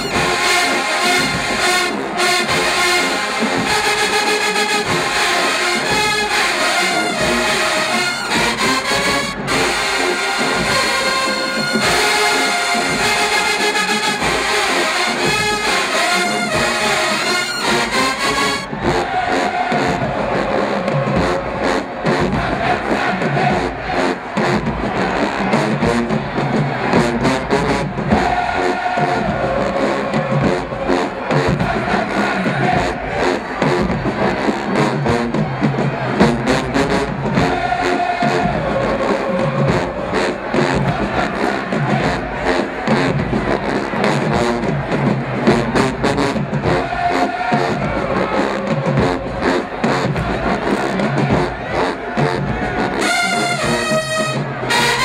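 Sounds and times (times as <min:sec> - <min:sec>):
brass holding loud notes: 0:00.0 - 0:35.4, 0:51.3 - 0:55.0
driving percussion beat: 0:00.0 - 0:55.0.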